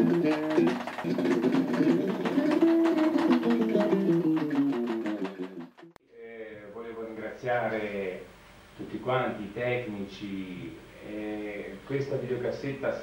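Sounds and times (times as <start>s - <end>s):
electric bass guitar run: 0.0s - 5.9s.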